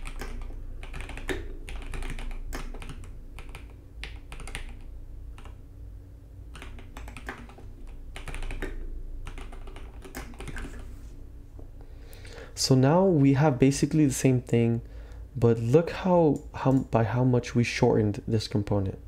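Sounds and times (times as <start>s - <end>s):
typing on computer keyboard: 0.0s - 5.6s, 6.5s - 10.9s.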